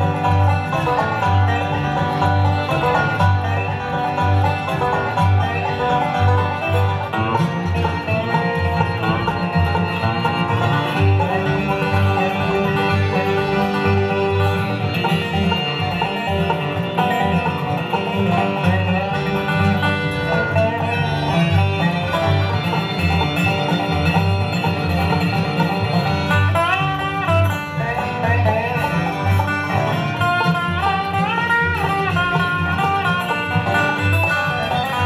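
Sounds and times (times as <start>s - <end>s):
acoustic guitar: 0.0s - 35.0s
banjo: 0.0s - 35.0s
dobro sliding lead notes: 0.0s - 35.0s
fiddle: 0.0s - 35.0s.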